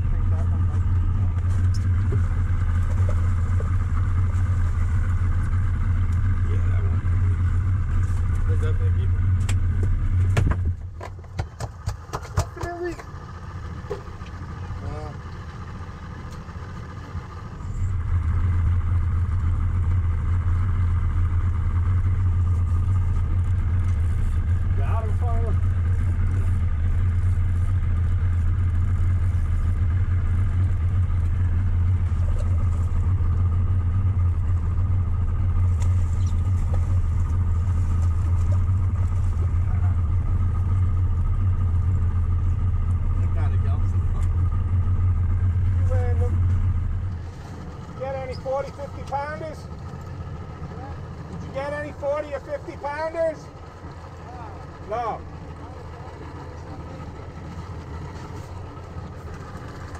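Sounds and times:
outboard motor droning: 0:00.0 - 0:59.9
faint voices: 0:47.6 - 0:59.9.

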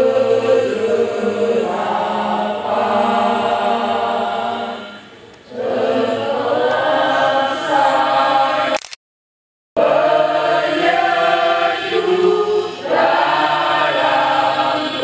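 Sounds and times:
choir singing slow song: 0:00.0 - 0:08.8, 0:09.8 - 0:15.0.

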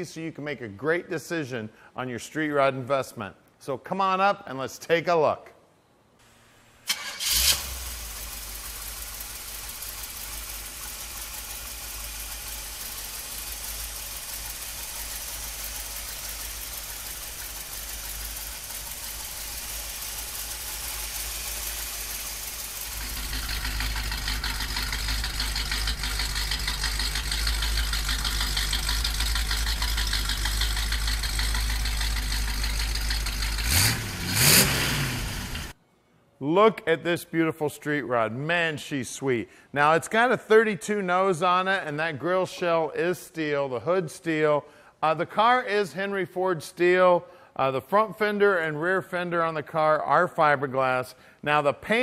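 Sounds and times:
car engine idling: 0:06.3 - 0:35.8.

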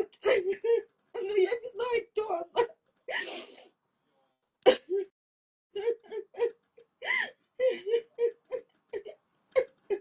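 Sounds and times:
woman sobbing: 0:00.0 - 0:01.6, 0:05.7 - 0:10.0.

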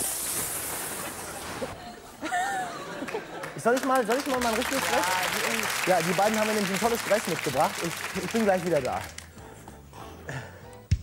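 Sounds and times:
faint background music: 0:04.4 - 0:11.0.

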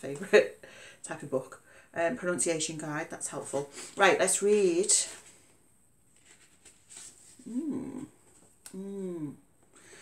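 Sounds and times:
book pages rustling: 0:05.0 - 0:07.6.

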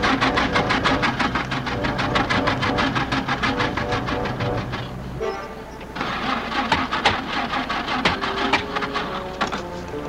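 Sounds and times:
truck engine rattling: 0:00.0 - 0:10.0.

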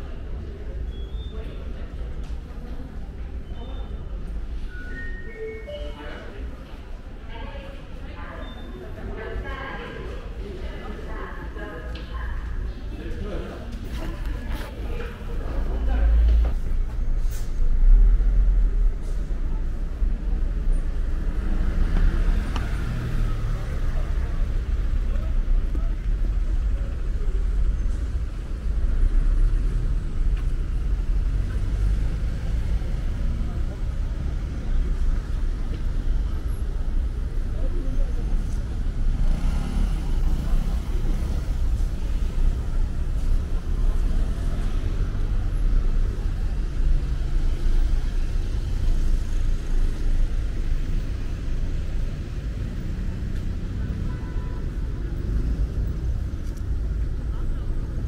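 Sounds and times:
road traffic: 0:00.0 - 0:58.0.

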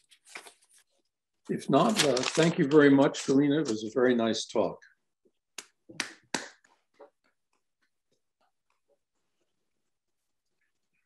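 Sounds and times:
hands clapping: 0:05.6 - 0:06.8.

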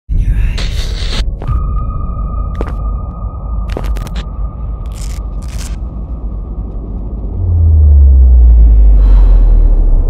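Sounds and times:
deep throbbing hum: 0:00.1 - 0:10.0.

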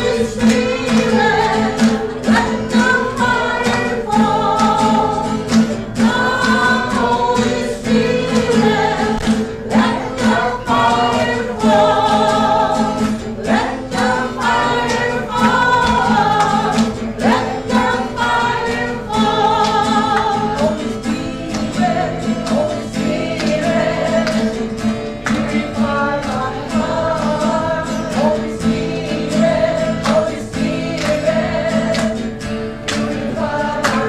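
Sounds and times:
congregation singing: 0:00.0 - 0:34.0.

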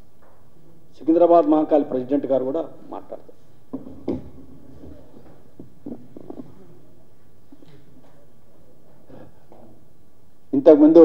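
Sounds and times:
microphone handling thumps and rubs: 0:03.4 - 0:09.9.

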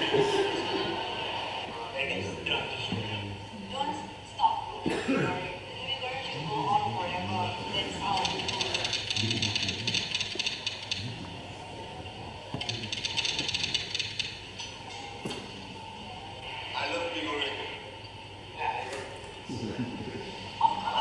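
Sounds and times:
voices: 0:00.0 - 0:10.3.

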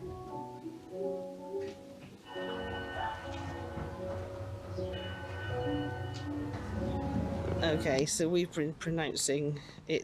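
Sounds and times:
sustained instrumental background music: 0:00.0 - 0:08.1.

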